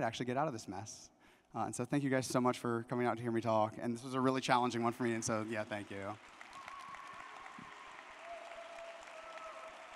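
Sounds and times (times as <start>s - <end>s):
audience applauding: 5.4s - 9.9s.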